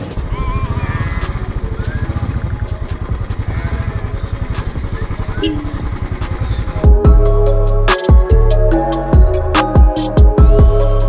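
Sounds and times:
background music: 0.0 - 11.0
motorcycle engine running: 0.0 - 11.0.

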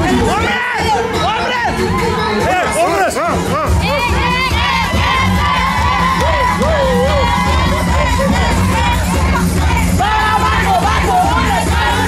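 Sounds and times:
crowd cheering and shouting: 0.0 - 12.0
percussion drums beating low: 3.4 - 12.0.

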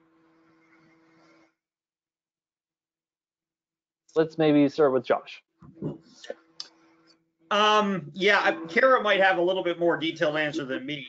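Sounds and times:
steady low hum: 7.5 - 11.0.

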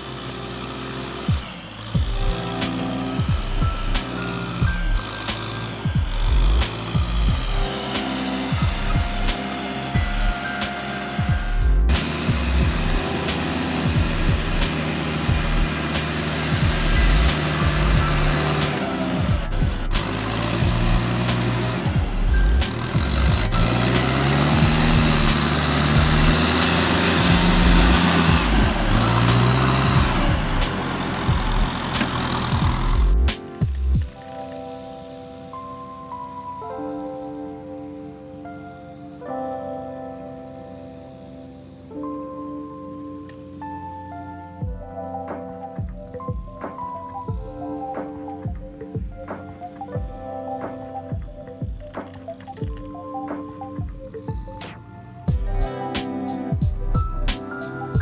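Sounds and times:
tractor diesel engine working: 0.0 - 36.6, 44.2 - 58.0
background music: 0.0 - 58.0.

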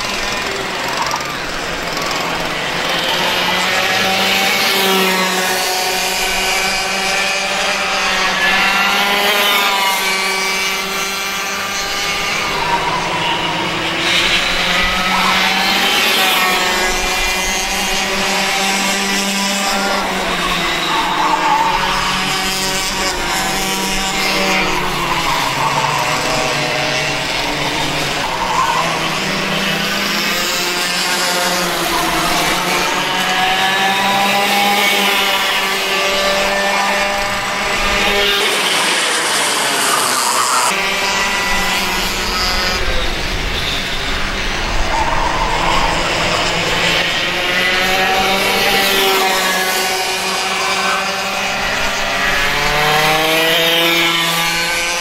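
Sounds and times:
kart engines revving: 0.0 - 55.0.

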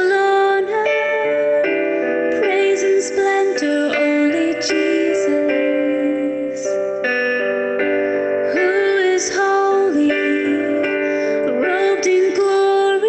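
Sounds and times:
woman singing: 0.0 - 7.0, 8.4 - 13.0
keyboard chords: 0.0 - 13.0.

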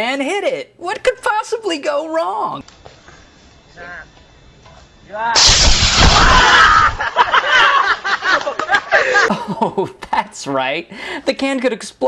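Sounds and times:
aerosol can explosion: 5.4 - 7.2.

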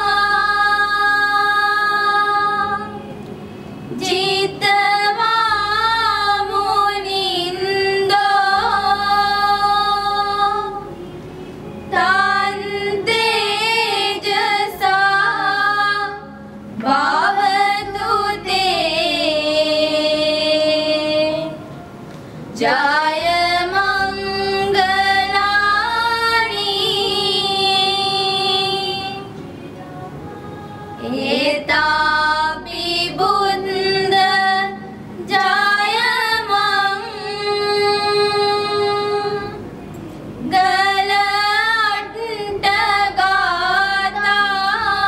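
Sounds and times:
high voice singing with vibrato: 0.0 - 3.2, 22.6 - 39.6
girls choir singing: 0.0 - 21.7, 22.5 - 39.8, 40.4 - 45.0.

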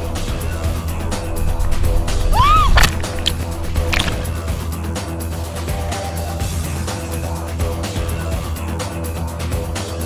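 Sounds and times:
music with heavy bass: 0.0 - 10.0.

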